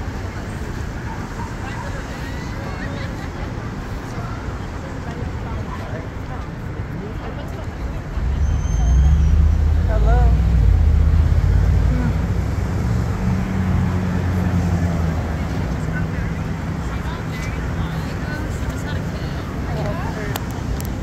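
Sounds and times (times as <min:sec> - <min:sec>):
vehicle engine rumble: 0:00.0 - 0:21.0.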